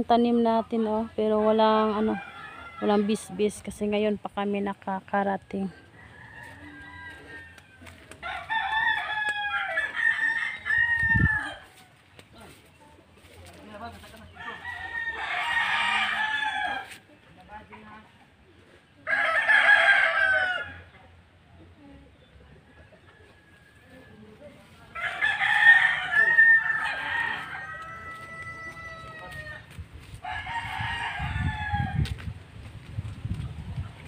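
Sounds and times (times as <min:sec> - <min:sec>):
rooster crowing: 0:05.9 - 0:11.8, 0:14.4 - 0:17.0, 0:19.1 - 0:20.8, 0:25.0 - 0:32.2.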